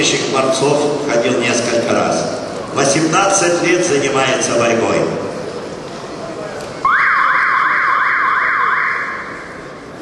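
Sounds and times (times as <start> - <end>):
arena crowd noise: 0.0 - 10.0
siren-like wail: 6.9 - 9.6.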